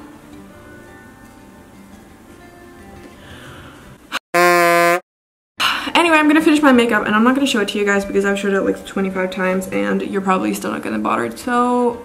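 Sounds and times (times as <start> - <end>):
harsh buzzer: 4.3 - 5.0.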